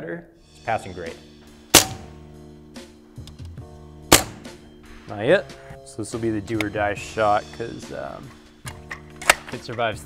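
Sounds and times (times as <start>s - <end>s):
air rifle shots: 1.7s - 2.2s, 4.1s - 4.6s.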